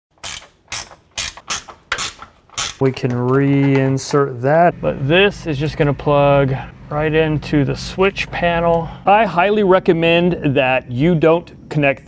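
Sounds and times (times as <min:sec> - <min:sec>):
ratchet wrench clicking: 0:00.2 - 0:02.8.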